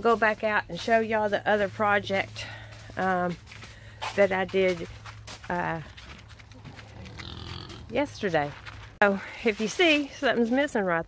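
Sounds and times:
faint farm animal call: 0:06.6 - 0:07.9.

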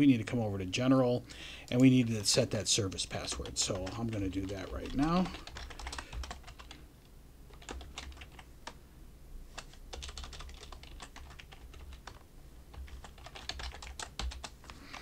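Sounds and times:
computer keyboard typing: 0:01.7 - 0:06.8, 0:07.5 - 0:08.8, 0:09.6 - 0:15.0.

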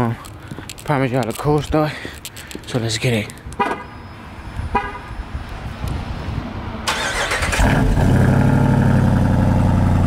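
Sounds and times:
car horn chirp: 0:03.6 - 0:04.1, 0:04.7 - 0:05.1.

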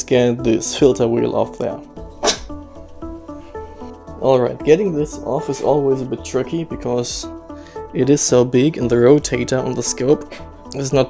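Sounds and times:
background music with held notes: 0:00.0 - 0:11.0.

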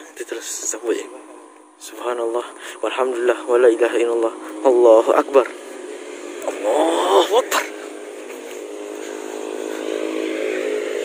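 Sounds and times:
motor vehicle engine running: 0:00.0 - 0:11.0.

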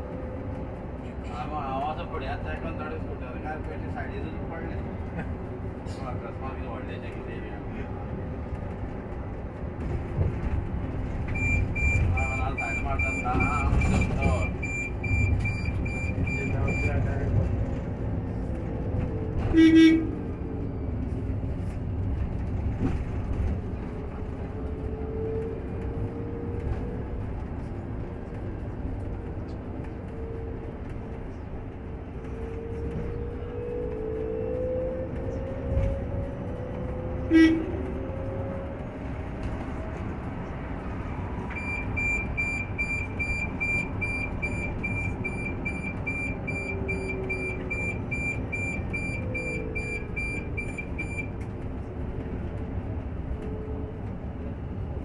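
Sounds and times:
road and tyre rumble: 0:00.0 - 0:55.0.

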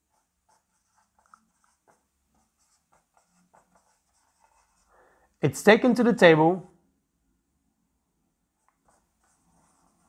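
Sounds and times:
marker pen on whiteboard: 0:00.0 - 0:06.5, 0:08.0 - 0:10.0.

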